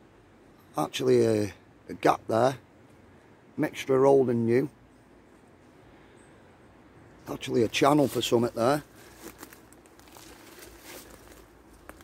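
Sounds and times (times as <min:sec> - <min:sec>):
dry leaves rustling and crackling: 0:07.4 - 0:12.0.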